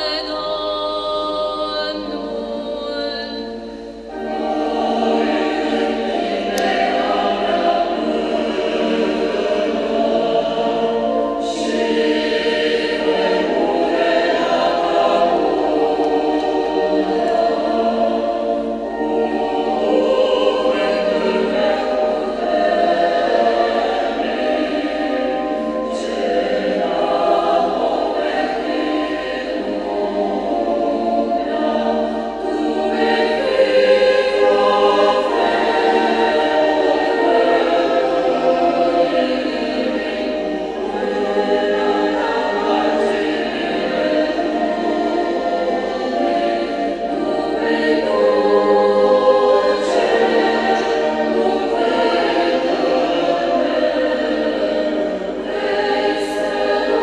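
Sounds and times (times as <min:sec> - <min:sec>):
church choir singing a hymn: 0:00.0 - 0:57.0.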